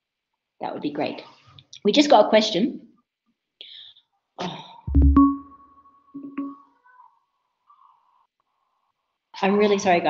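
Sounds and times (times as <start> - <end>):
electronic notification chime: 4.9 - 6.6.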